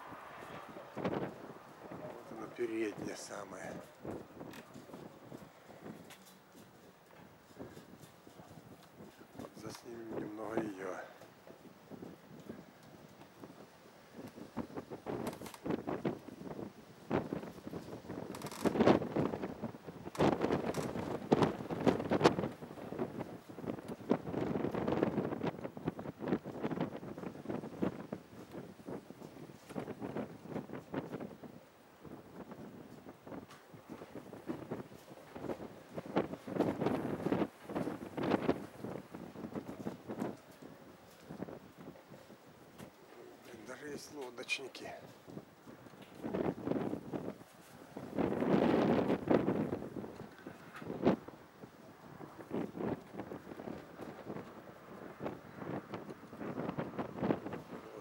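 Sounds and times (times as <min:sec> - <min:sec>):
wind buffeting microphone: 0:00.0 - 0:58.0.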